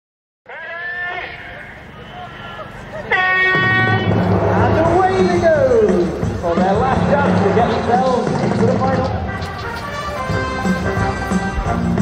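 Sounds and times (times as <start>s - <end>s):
person giving high held calls: 0.5s - 6.4s.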